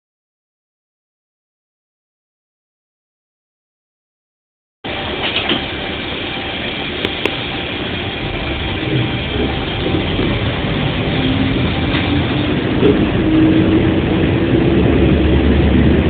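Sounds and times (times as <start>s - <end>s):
diesel engine running: 4.8s - 16.0s.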